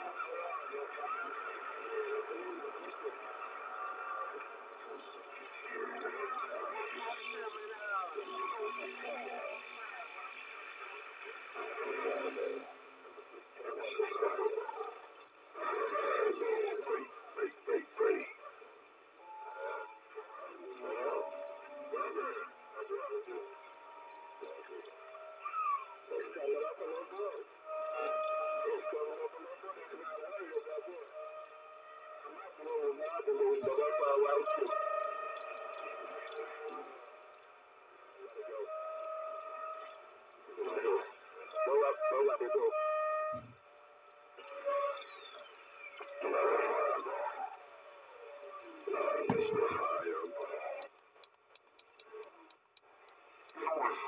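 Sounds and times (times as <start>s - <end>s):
distorted voices over radio: 48.9s - 50.6s.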